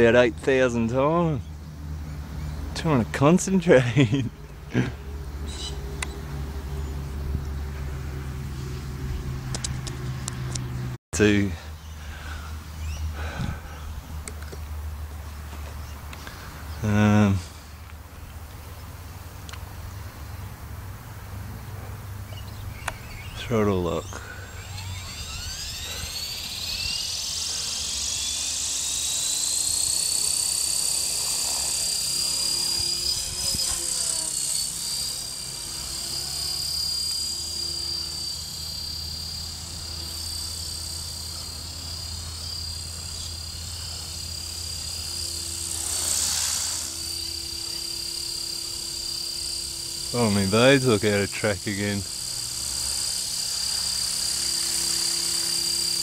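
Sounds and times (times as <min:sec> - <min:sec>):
rotor noise: 0:00.6 - 0:56.0
rc helicopter motor whine: 0:03.9 - 0:56.0.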